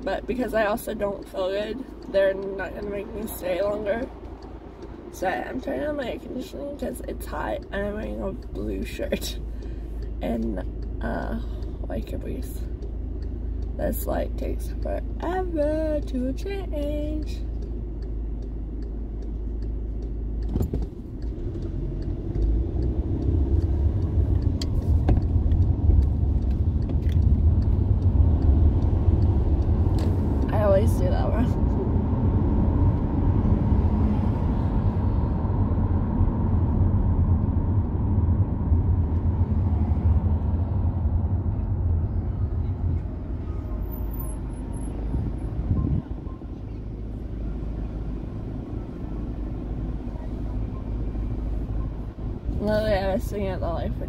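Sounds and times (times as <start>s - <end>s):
car engine and road rumble: 0.0s - 54.0s.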